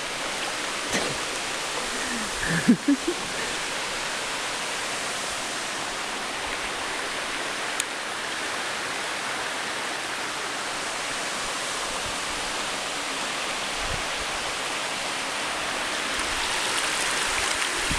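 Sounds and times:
waterfall rushing: 0.0 - 17.9.

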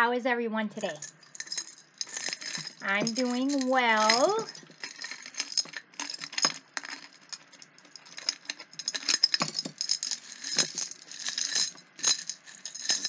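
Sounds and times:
beads rattling in glass jar: 0.8 - 13.0.

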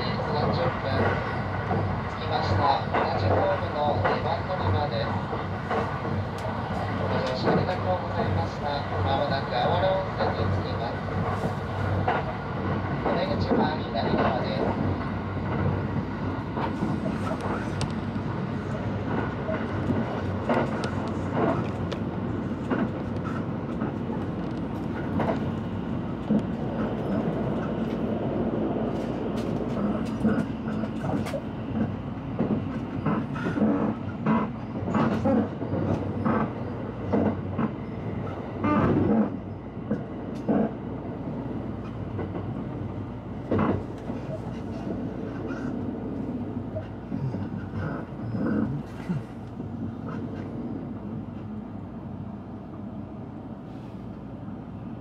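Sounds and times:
train running gear rumble: 0.0 - 55.0.

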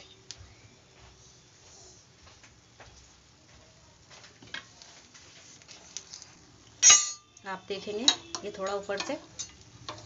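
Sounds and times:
sharp ringing clack: 6.8 - 7.3.

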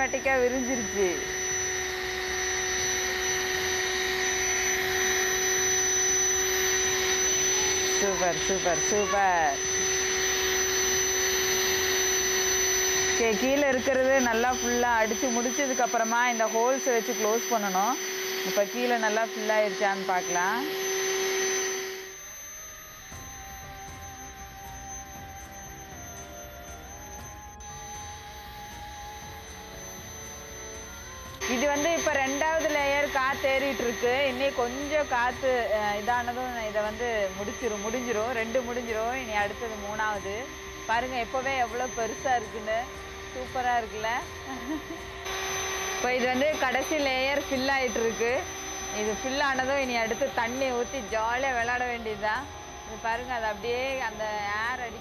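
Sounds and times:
electric air pump whining: 0.0 - 55.0
low hum: 0.0 - 55.0
soft sustained tones: 0.0 - 55.0.

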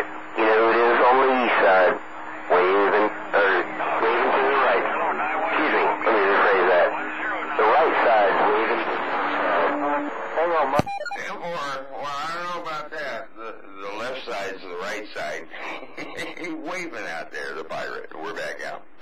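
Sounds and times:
voice over radio receiver: 0.0 - 18.8
steady hum: 0.0 - 19.0.

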